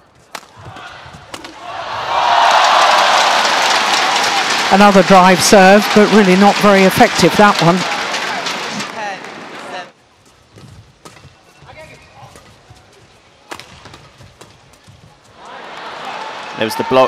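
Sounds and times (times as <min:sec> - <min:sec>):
arena crowd noise: 0:00.0 - 0:10.0, 0:11.2 - 0:17.0
racket hitting shuttlecock: 0:00.3 - 0:01.7
crowd cheering: 0:00.6 - 0:09.9, 0:15.3 - 0:17.0.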